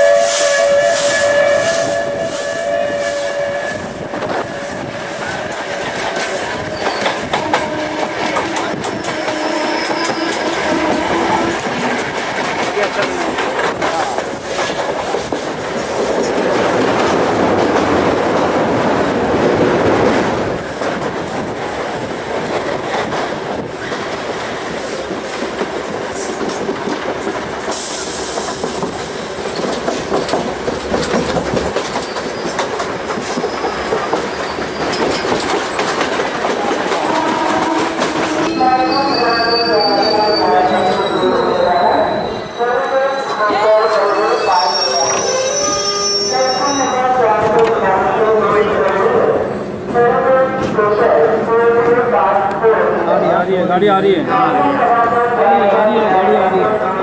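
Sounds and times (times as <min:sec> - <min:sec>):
train wheels clattering: 0:00.0 - 0:19.1, 0:20.0 - 0:38.5
train rumble: 0:00.0 - 0:57.0.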